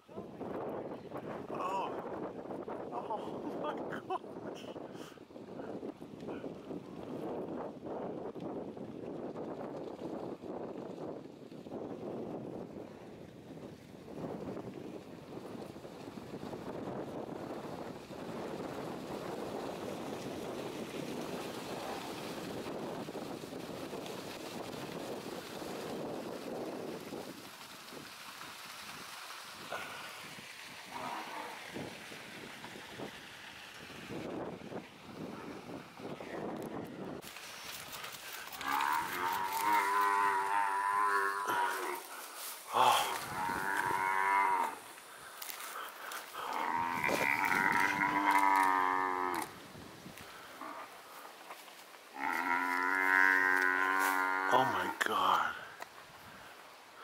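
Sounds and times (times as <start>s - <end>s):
buffalo bellowing in distress: 38.6s - 42.2s, 42.8s - 44.8s, 46.5s - 49.5s, 52.1s - 55.0s.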